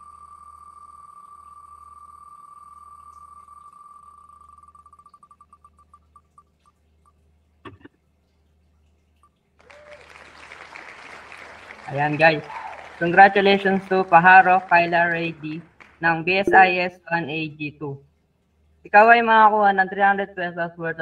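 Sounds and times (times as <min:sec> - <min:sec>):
spinning wheel ticking: 0:00.7 - 0:06.7.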